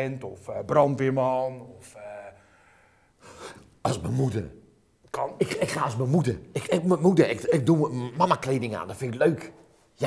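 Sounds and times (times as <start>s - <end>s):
man speaking: 0.0s - 2.4s, 3.5s - 10.0s
sharp intake of breath: 2.4s - 3.7s.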